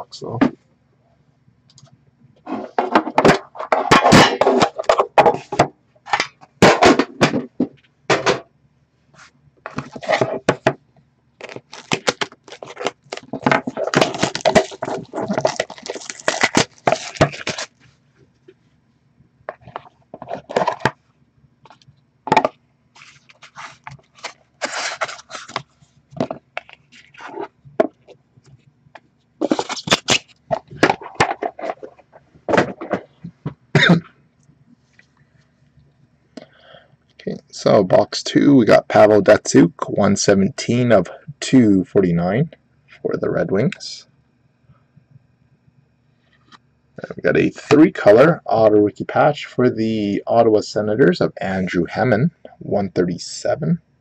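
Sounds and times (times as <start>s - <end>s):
cardboard and cards rustling: 9.7s - 10.8s, 11.4s - 17.8s, 19.5s - 21.0s, 21.7s - 28.2s, 29.4s - 33.5s.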